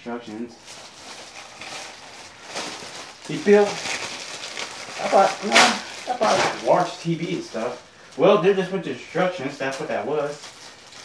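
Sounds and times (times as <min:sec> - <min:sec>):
plastic bag rustling and crinkling: 0:00.6 - 0:11.0.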